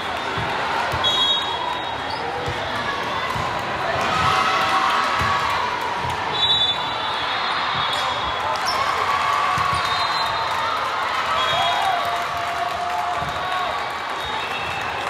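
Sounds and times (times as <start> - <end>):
murmur of spectators chatter: 0.0 - 15.0.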